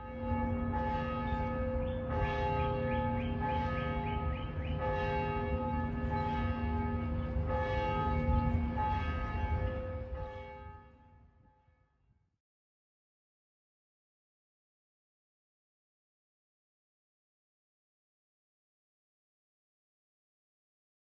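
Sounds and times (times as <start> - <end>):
church bells ringing: 0.0 - 11.1.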